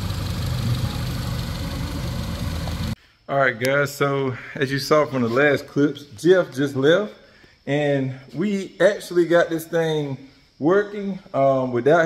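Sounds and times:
car engine idling: 0.0 - 3.0.

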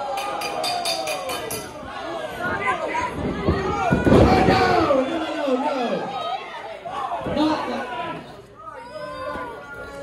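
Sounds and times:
spectators shouting and chattering: 0.0 - 10.0.

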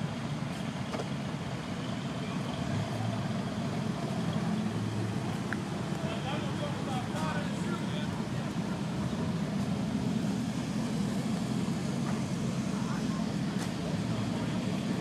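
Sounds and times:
vehicle engine idling: 0.0 - 15.0
faint voices: 1.6 - 15.0.

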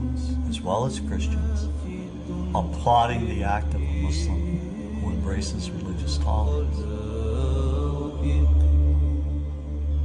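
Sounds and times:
chant-like voices: 0.0 - 10.0
deep bass drone: 0.0 - 10.0.

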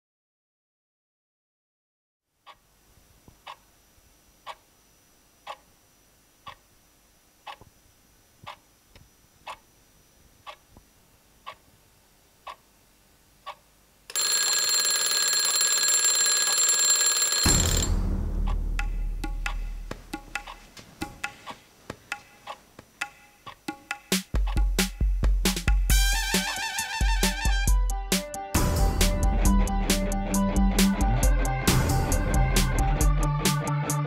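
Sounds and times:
alarm clock ticking: 13.5 - 24.9
alarm clock bells ringing: 14.1 - 18.0.

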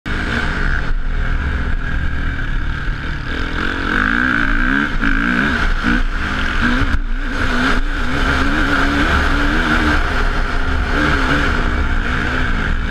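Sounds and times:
motocross bike engine revving: 0.1 - 12.9.

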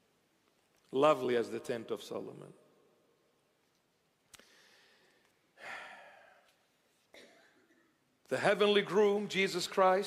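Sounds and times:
man sighing breath: 4.4 - 6.5.

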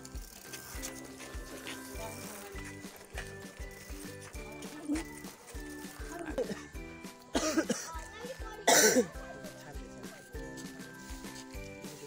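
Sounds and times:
song with steady beat: 1.0 - 12.0.

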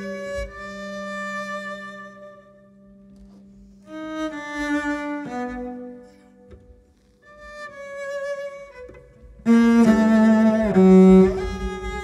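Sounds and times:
cello bowed notes: 0.0 - 12.0.

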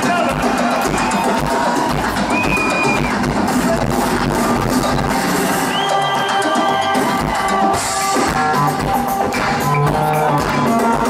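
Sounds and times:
live synth-rock band over pa: 0.0 - 11.0.

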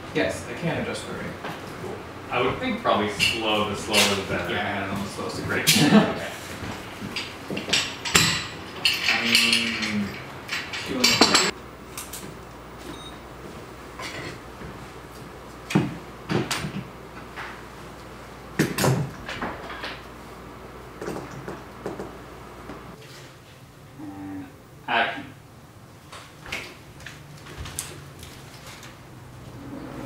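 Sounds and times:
objects knocking and clattering: 6.6 - 11.6, 15.7 - 17.6, 21.0 - 22.2
low voices: 8.7 - 11.5.

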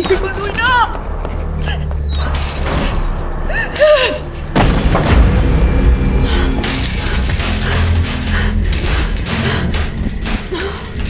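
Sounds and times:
droning film score: 0.0 - 11.0.

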